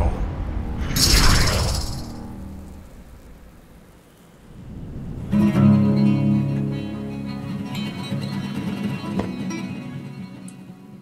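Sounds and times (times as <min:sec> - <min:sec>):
low rumbling soundtrack hit: 0:00.0 - 0:07.0.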